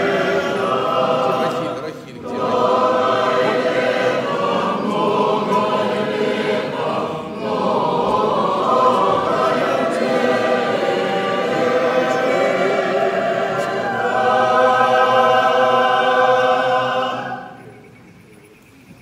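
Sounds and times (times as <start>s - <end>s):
choir singing unaccompanied chant: 0.0s - 18.0s.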